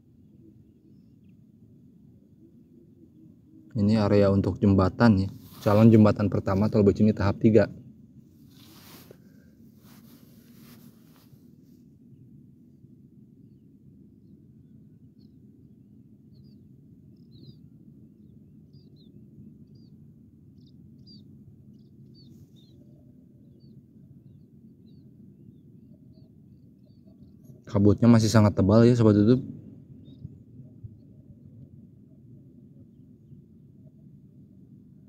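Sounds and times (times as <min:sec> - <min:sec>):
low steady rumble: 0:00.0 - 0:35.0
small bird chirping: 0:16.3 - 0:27.6, 0:30.0 - 0:31.2.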